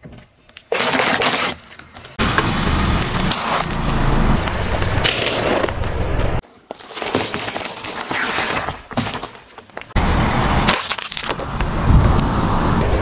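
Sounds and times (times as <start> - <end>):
car engine: 2.2 - 4.8, 10.0 - 12.9.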